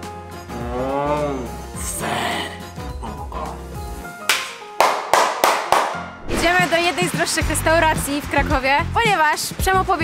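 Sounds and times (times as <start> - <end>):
background music: 0.0 - 10.0
sharp percussive hits: 4.3 - 7.6.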